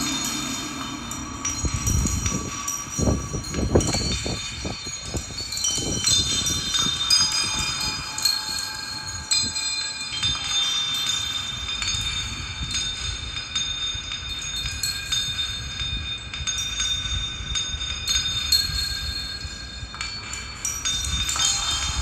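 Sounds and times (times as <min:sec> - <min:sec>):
high sustained metallic tones: 0:00.0 - 0:22.0.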